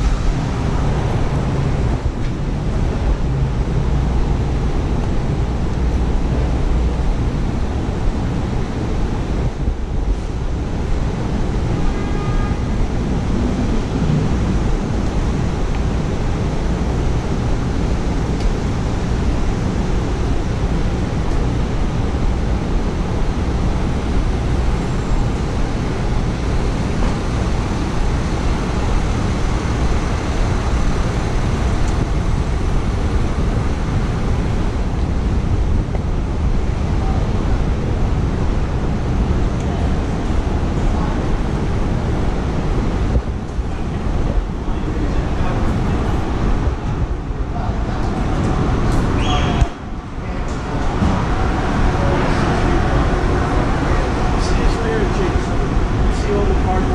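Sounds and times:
traffic roar: 0.0s - 56.9s
wind noise on microphone: 0.0s - 56.9s.

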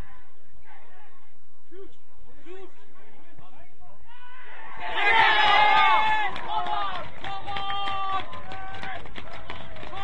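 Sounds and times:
crowd shouting and cheering: 4.0s - 10.0s.

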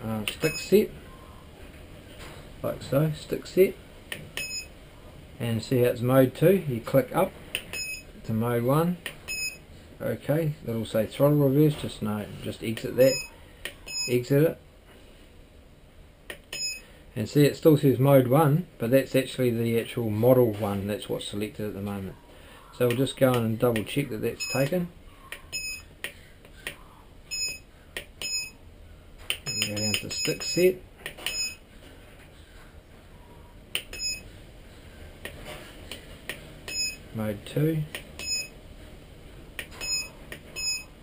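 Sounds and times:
short high beeps: 27.3s - 27.6s, 29.4s - 30.6s, 33.9s - 34.2s, 36.7s - 37.0s, 38.2s - 38.5s, 39.8s - 40.9s.

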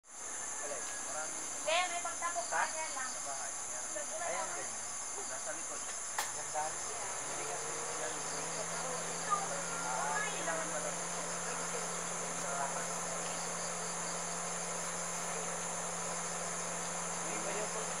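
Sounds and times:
insects shrilling: 0.1s - 18.0s
short insect chirps: 0.1s - 18.0s.

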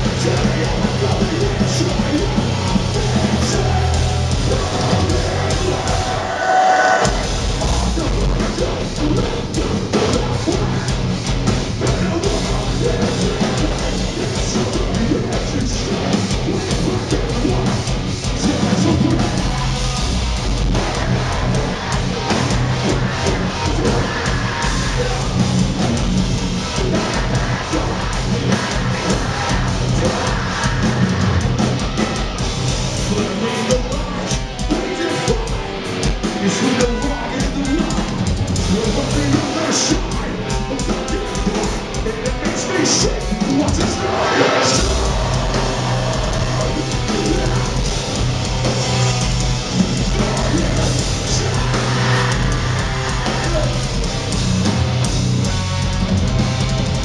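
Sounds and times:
vocals: 0.0s - 56.8s
drum kit: 0.0s - 57.0s
heavy distorted guitars: 0.0s - 57.0s
metalcore band playing live: 0.0s - 57.0s.

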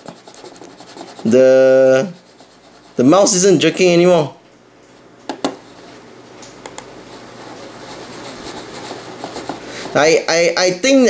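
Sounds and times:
mouse clicks: 6.5s - 6.9s
mouse sliding over desk: 7.1s - 10.0s.

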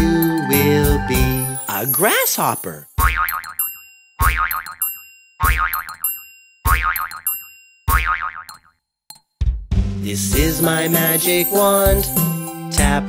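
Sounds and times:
cartoon spring boing: 3.0s - 3.6s, 4.2s - 6.1s, 6.7s - 8.8s.

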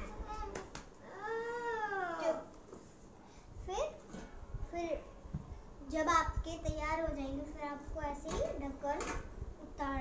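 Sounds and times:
child's long wordless cry: 1.0s - 2.5s.

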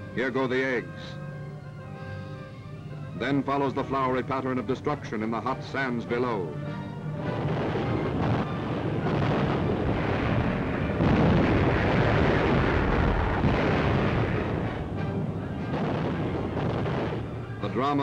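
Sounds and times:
background music: 0.0s - 18.0s
bombs exploding: 7.3s - 17.8s.

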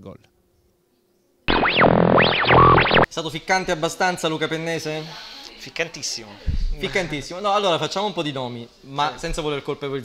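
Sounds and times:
synthesizer tones sweeping: 1.5s - 3.1s.

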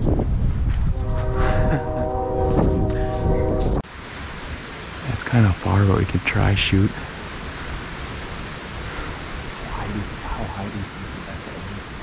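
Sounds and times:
wind buffeting microphone: 0.0s - 5.3s.

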